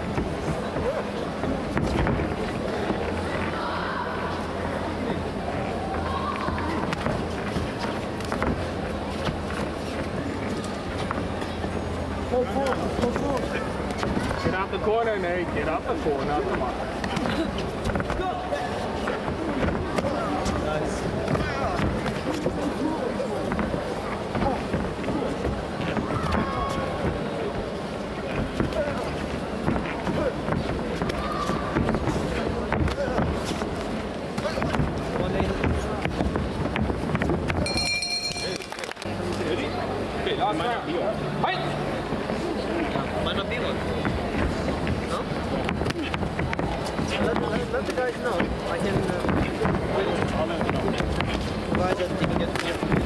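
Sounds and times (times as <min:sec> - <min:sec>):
feet on ring canvas: 0:00.0 - 0:04.0, 0:05.8 - 0:38.8, 0:43.9 - 0:53.0
background voices and chatter: 0:00.0 - 0:53.0
brief high tone: 0:37.6 - 0:38.6.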